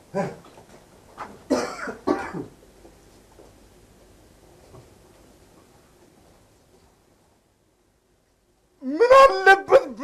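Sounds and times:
man coughing: 1.5 - 2.6.

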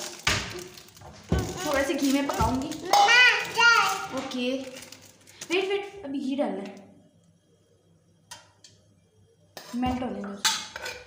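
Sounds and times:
clatter of metal and crockery: 0.0 - 5.6, 9.6 - 11.0
utensils clinking against dishes: 9.6 - 11.0.

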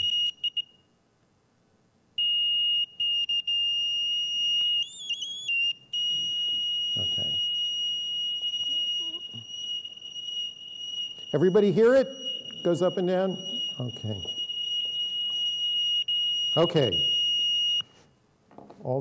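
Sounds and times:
high-pitched electronic buzzer: 0.0 - 0.6, 3.7 - 14.4.

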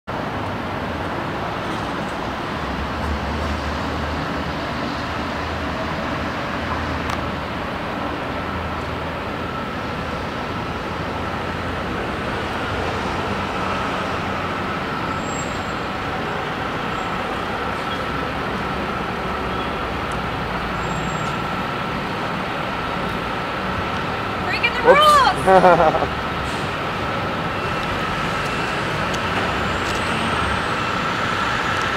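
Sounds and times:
heavy truck engines running: 0.1 - 31.9
traffic: 0.1 - 31.9.

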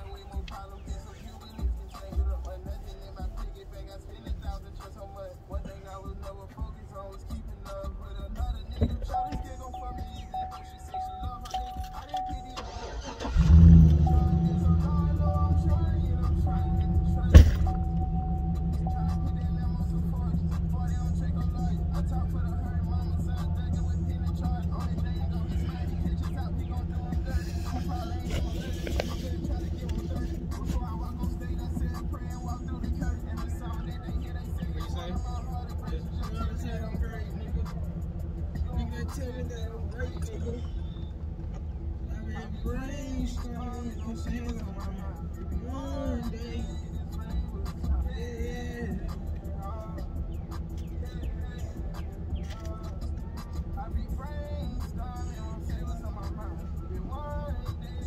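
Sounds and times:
car engine starting and idling: 0.0 - 58.0
sharp knock: 17.4 - 17.8.

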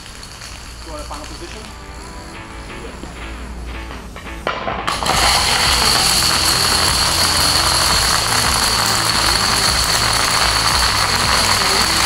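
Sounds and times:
plastic dominoes clattering: 0.0 - 1.8, 4.9 - 12.0.

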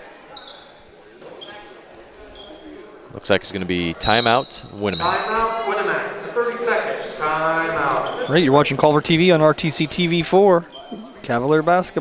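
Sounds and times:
sneakers squeaking on hardwood: 0.0 - 3.2, 3.9 - 5.6, 6.8 - 9.3, 10.6 - 11.7
crowd murmur: 0.0 - 12.0.

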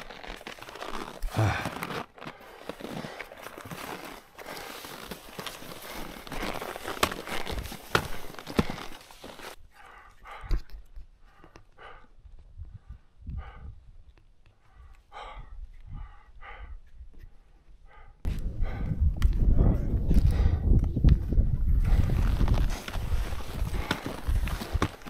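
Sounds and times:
skis crunching through snow: 0.0 - 9.6, 21.9 - 25.0
heavy breathing: 0.8 - 20.7, 21.8 - 25.0.

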